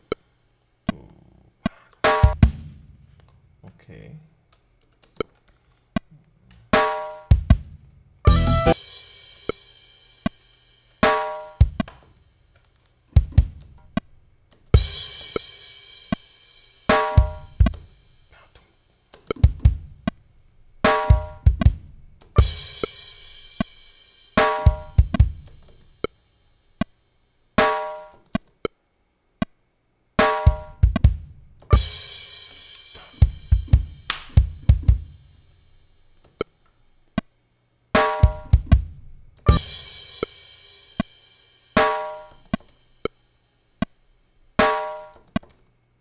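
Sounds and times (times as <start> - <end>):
reggae drum loop: 2.0 - 3.0, 6.7 - 12.2, 13.1 - 13.9, 14.8 - 18.5, 19.2 - 26.2, 27.6 - 28.2, 30.2 - 35.8, 38.0 - 43.1, 44.6 - 45.2.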